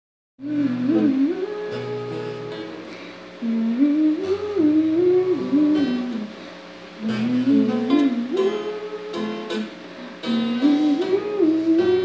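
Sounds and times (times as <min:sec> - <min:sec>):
woman humming: 0:00.4 - 0:06.4, 0:07.0 - 0:12.0
soft acoustic guitar: 0:00.4 - 0:12.0.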